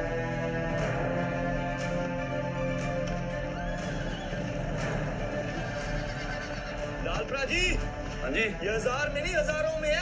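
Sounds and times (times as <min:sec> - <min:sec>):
film score music: 0:00.0 - 0:10.0
horse whinnying: 0:03.7 - 0:07.0.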